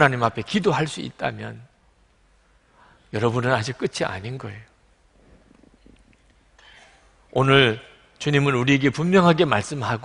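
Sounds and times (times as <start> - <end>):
soft intake of breath: 2.4 - 3.2.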